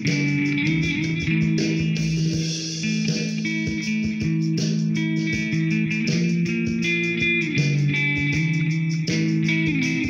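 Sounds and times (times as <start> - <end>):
guitar sustained notes: 0.0 - 10.0.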